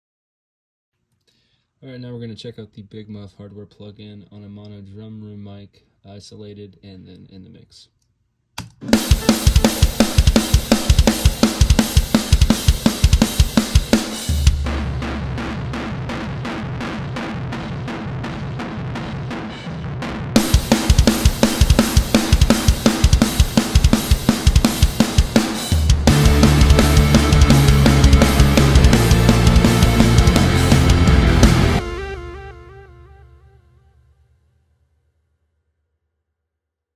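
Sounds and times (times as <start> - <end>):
distorted drum kit: 8.7 - 33.1.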